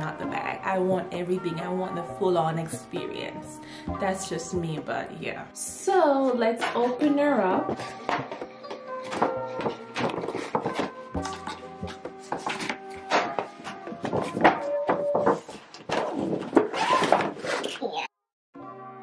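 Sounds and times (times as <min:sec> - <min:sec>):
background music: 0:00.0 - 0:17.2, 0:18.6 - 0:19.0.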